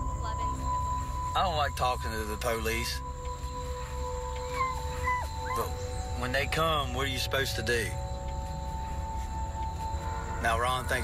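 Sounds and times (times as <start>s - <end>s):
droning background music: 0.0s - 11.0s
dog whining: 4.4s - 6.0s.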